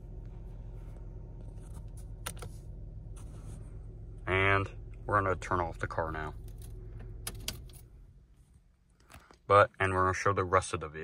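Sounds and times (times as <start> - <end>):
car engine idle hum: 0.0 - 11.0
control switch clicks: 7.1 - 7.8.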